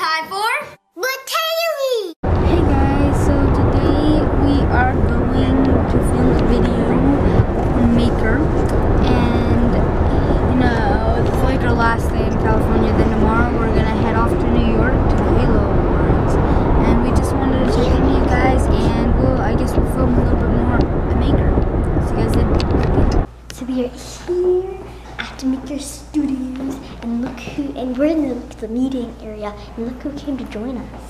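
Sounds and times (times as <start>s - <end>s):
boy talking: 0.0s - 31.0s
car road and engine noise: 2.2s - 23.3s.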